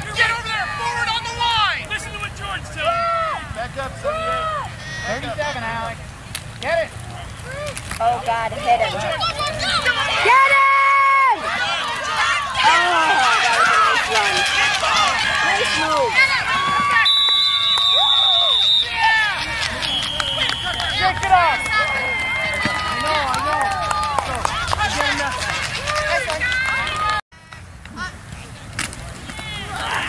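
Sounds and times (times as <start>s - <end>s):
spectators shouting and cheering: 0.0s - 5.9s, 7.0s - 28.2s, 29.0s - 30.0s
referee's whistle: 17.0s - 19.0s, 19.7s - 22.3s.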